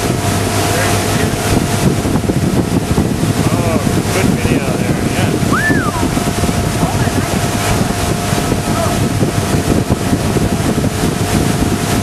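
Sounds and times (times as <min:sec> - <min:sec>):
boat engine drone: 0:00.0 - 0:12.0
water rushing: 0:00.0 - 0:12.0
wind buffeting microphone: 0:00.0 - 0:12.0.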